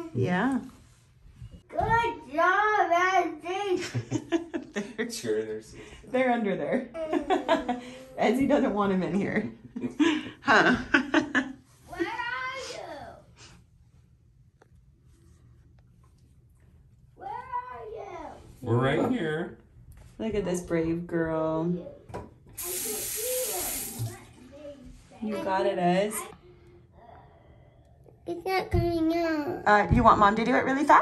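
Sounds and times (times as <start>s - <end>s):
voices speaking: 20.3s - 26.5s.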